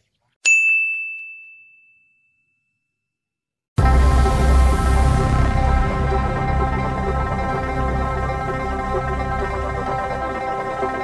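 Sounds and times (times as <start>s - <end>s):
bright chime ding: 0.4s - 2.8s.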